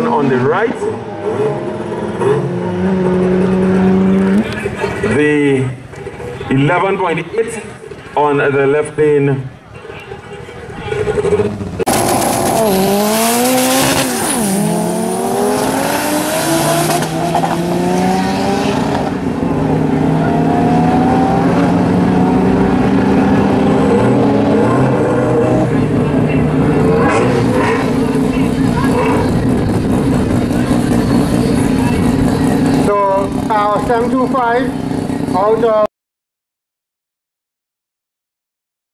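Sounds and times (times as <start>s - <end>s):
racing car engines revving: 0.0s - 8.2s, 9.8s - 35.8s.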